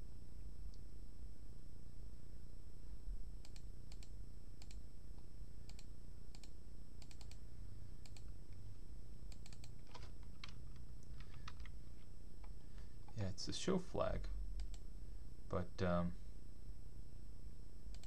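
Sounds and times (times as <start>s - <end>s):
steady low hum: 0.0s - 18.0s
computer keyboard typing: 5.7s - 7.4s, 8.0s - 8.3s, 9.3s - 11.7s.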